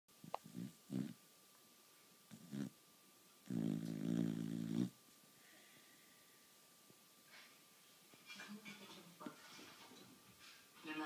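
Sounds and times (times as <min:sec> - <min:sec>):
dog snoring: 0:00.2 - 0:01.2, 0:02.3 - 0:02.8, 0:03.4 - 0:05.0.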